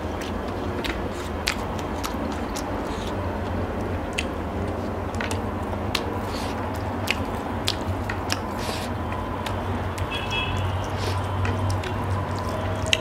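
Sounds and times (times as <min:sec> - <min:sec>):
person chewing and smacking food: 0:00.0 - 0:13.0
wet mouth clicks: 0:00.1 - 0:13.0.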